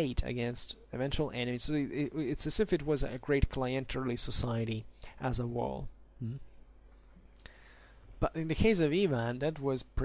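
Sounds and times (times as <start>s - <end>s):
low steady hum: 0.0s - 10.0s
man saying mm-hmm: 6.2s - 6.6s.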